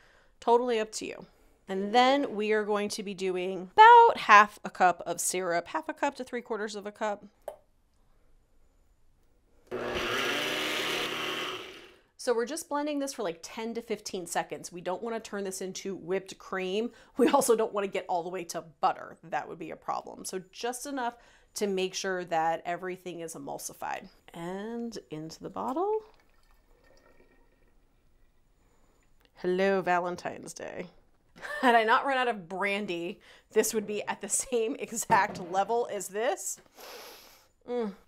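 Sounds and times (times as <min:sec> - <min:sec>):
blender motor running: 0:09.7 - 0:12.0
thick liquid pouring into bottle: 0:26.0 - 0:29.1.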